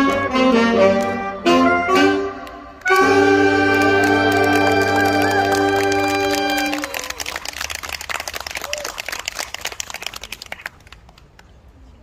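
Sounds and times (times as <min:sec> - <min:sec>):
audience applauding: 0:02.8 - 0:11.5.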